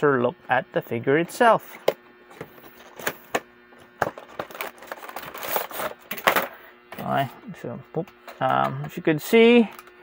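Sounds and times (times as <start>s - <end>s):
plastic tray scraping and rustling: 4.0s - 6.6s.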